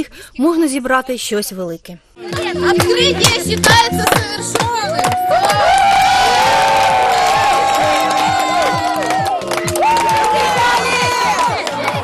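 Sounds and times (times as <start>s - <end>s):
crowd cheering and shouting: 2.2s - 12.0s
music: 2.2s - 12.0s.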